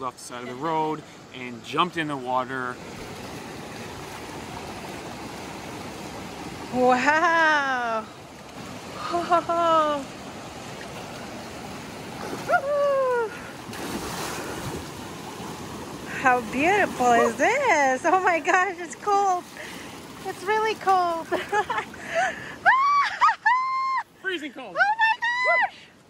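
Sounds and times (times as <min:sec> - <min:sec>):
person yelping cries: 0:12.5 - 0:13.4.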